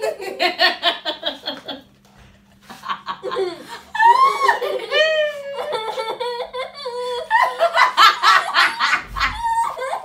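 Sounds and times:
women laughing: 0:00.0 - 0:01.9, 0:02.6 - 0:10.0.

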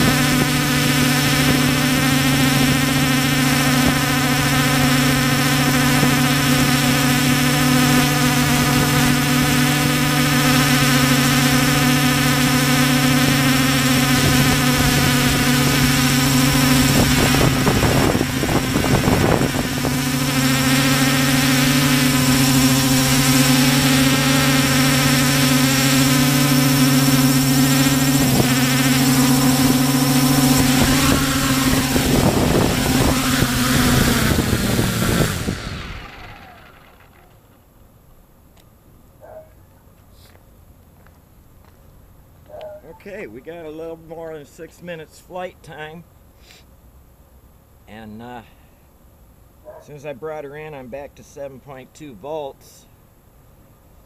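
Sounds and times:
drone motors humming: 0:00.0 - 0:37.7.

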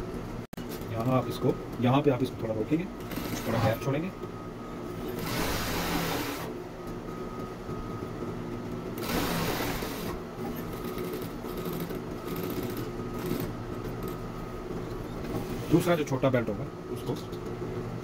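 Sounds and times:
sewing machine motor hum: 0:03.0 - 0:03.9, 0:05.0 - 0:06.6, 0:09.0 - 0:13.5
sewing machine stitching: 0:03.1 - 0:03.8, 0:05.1 - 0:06.5, 0:09.0 - 0:10.2.

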